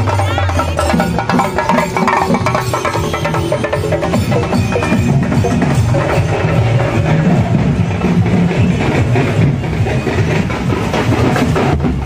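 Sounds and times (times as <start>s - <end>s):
frame drums beaten with sticks: 0.0s - 12.0s.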